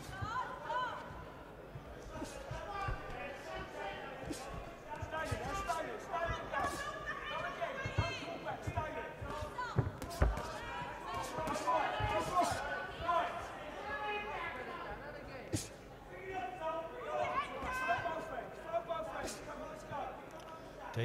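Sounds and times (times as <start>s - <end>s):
crowd shouting: 2.0s - 14.6s
boxing punches thudding: 7.9s - 12.7s.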